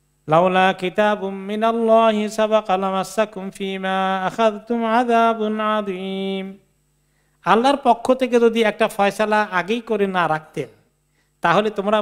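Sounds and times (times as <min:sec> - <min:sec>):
man chanting melodically: 0:00.3 - 0:06.6, 0:07.4 - 0:10.8, 0:11.4 - 0:12.0.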